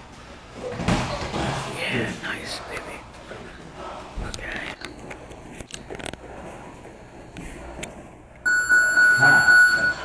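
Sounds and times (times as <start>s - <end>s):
timer buzzer high tone: 8.5s - 10.0s.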